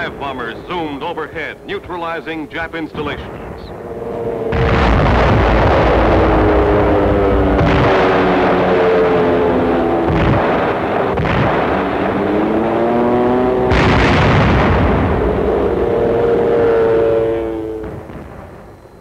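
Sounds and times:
aircraft engines droning: 0:00.0 - 0:19.0
heavy explosions: 0:00.0 - 0:19.0.

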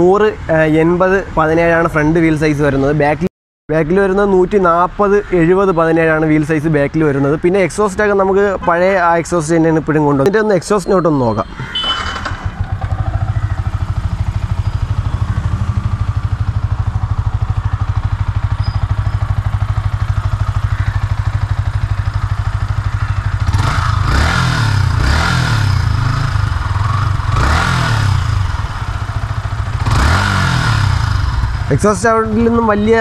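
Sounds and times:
engine throttle blips: 0:10.7 - 0:33.0
motorcycle engine idling: 0:11.3 - 0:33.0.

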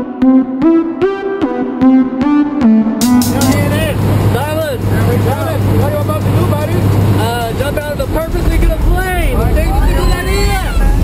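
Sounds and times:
plane engine and propeller drone: 0:03.6 - 0:09.6.

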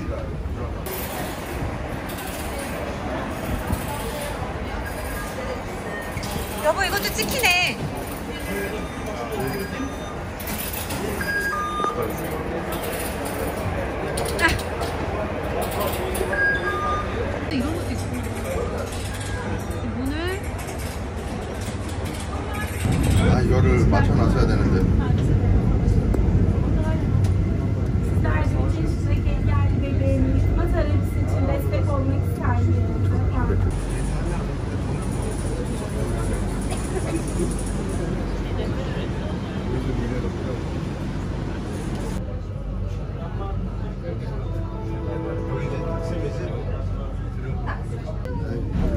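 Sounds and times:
crowd chatter: 0:00.0 - 0:48.9
metro train rumble: 0:00.0 - 0:48.9
short electronic beeps: 0:11.2 - 0:12.1, 0:16.3 - 0:17.2.

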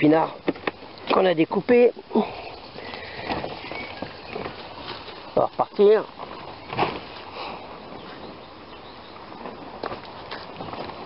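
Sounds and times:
faint outdoor background: 0:00.0 - 0:11.0
footsteps in a garden: 0:02.8 - 0:08.4.

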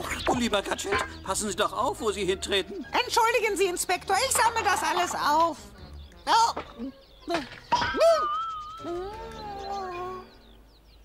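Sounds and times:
faint high chirps: 0:06.0 - 0:11.0.

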